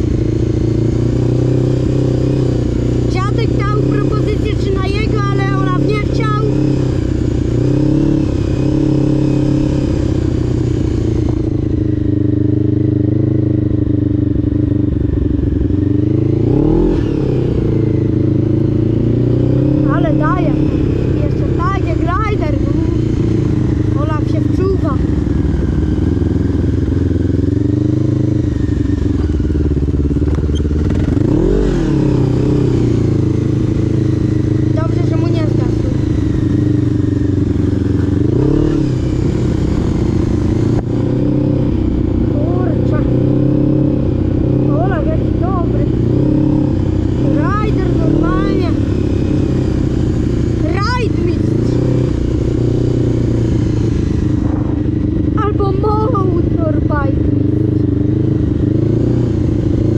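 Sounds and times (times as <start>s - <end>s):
quad bike engine running: 0.0s - 59.9s.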